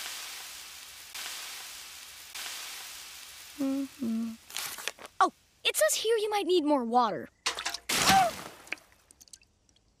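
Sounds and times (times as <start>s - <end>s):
cartoon water splash: 7.5s - 8.8s.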